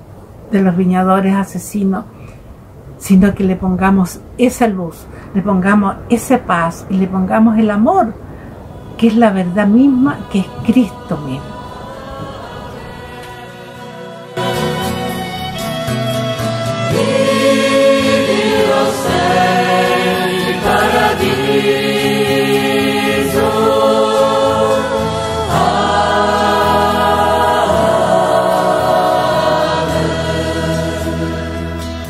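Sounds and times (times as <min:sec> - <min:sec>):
choir singing a hymn: 0:09.0 - 0:32.0.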